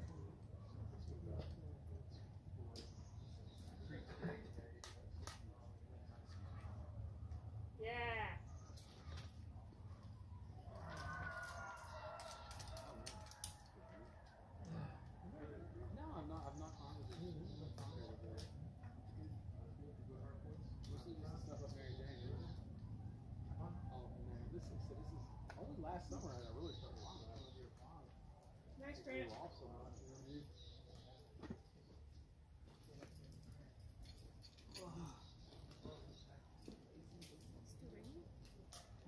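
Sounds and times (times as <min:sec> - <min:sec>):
faint indistinct voices: 0:00.0 - 0:39.0.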